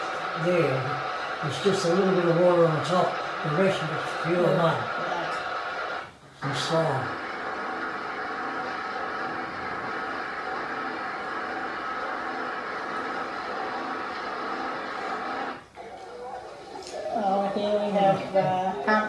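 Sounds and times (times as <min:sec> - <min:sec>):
engine-driven pump droning: 0:00.0 - 0:15.6.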